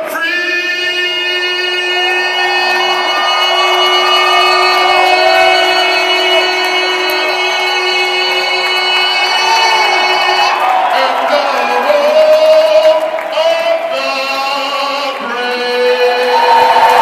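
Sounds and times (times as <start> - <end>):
man singing long note: 0.0 - 17.0
crowd cheering and whooping: 1.4 - 17.0.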